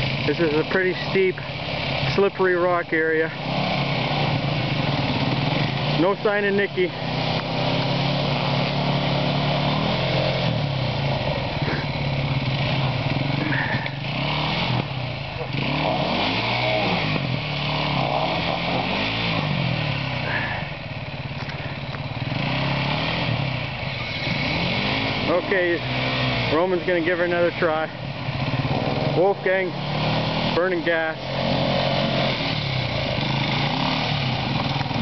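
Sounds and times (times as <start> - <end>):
motorcycle engines revving: 0.0 - 35.0.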